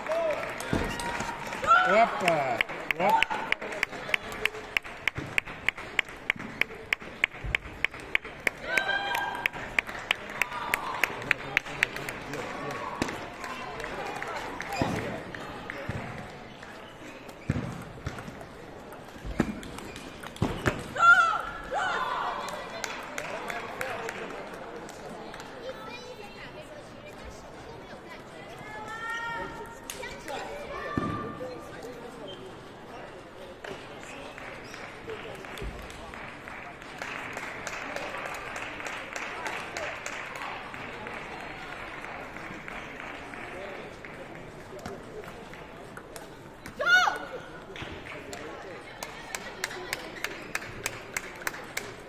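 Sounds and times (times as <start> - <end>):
people shouting and talking: 0.0 - 52.0.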